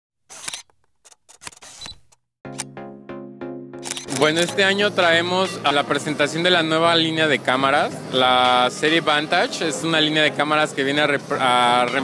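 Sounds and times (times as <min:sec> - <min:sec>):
camera-like clicks: 0:00.3 - 0:02.7, 0:03.8 - 0:04.5.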